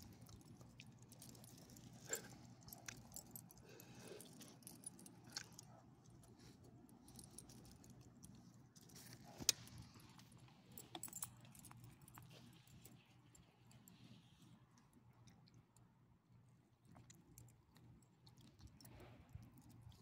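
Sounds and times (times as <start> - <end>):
dog collar tags jingling: 0.4 - 5.7, 10.8 - 12.9.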